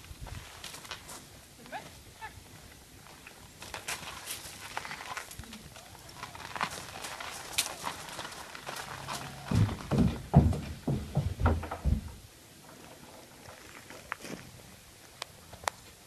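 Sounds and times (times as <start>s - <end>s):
pony hooves stepping: 2.6s - 14.5s.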